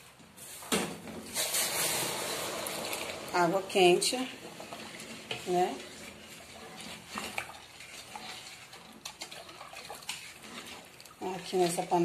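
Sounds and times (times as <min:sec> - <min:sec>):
spoon stirring in metal pot: 0:01.4 - 0:12.0.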